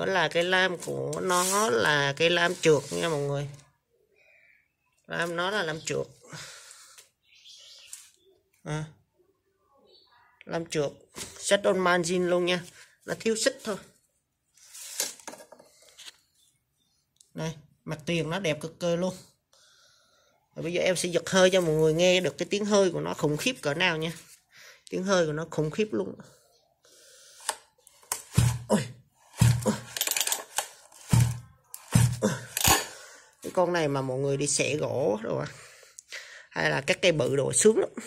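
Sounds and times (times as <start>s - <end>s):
scraping rustle on cardboard: 0.8s - 3.3s.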